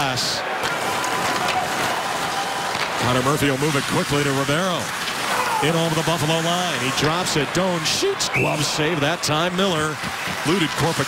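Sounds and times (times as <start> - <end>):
arena crowd noise: 0.0 - 11.0
skates and sticks on ice: 0.6 - 7.8, 9.8 - 11.0.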